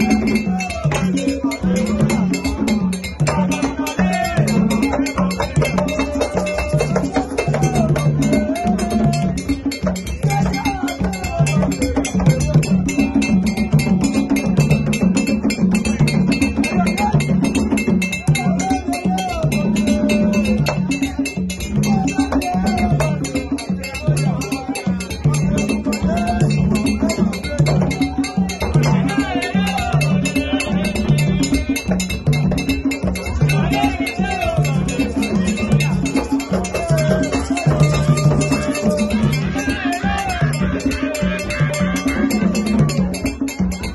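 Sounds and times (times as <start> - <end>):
barrel drums playing low pattern: 0.0 - 43.9
voices singing: 0.0 - 43.9.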